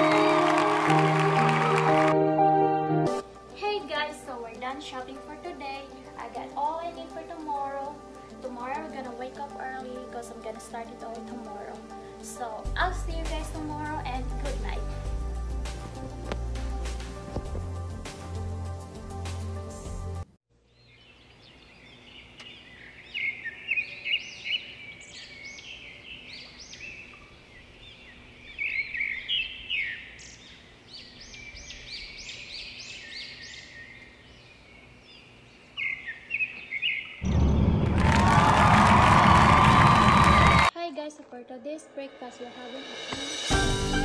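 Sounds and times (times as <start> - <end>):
small birds chirping: 20.6 - 37.5.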